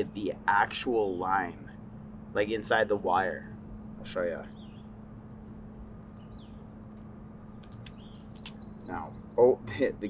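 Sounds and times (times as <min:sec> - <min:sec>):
steady low hum: 0:00.0 - 0:10.0
faint bird chirp: 0:03.4 - 0:10.0.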